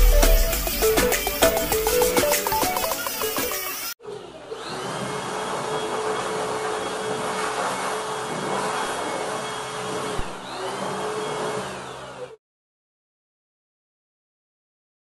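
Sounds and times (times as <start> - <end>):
electric air blower whine: 0.0 - 12.4.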